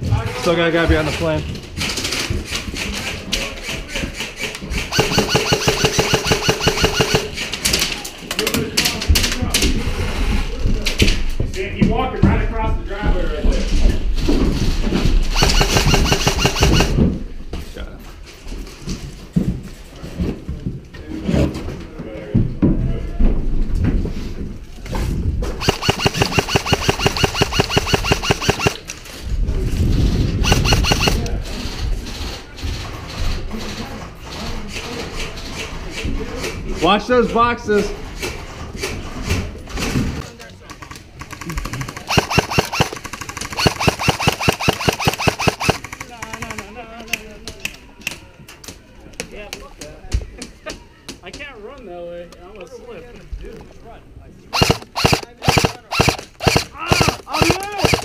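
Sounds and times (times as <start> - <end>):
airsoft rifles firing bursts: 2.1 - 7.8, 15.2 - 17.1, 25.6 - 28.9, 30.4 - 31.3, 41.2 - 46.7, 54.5 - 58.0.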